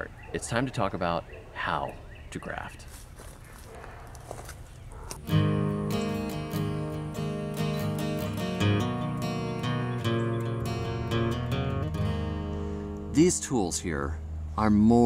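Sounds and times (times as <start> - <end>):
strummed acoustic guitar music: 5.2 - 13.8.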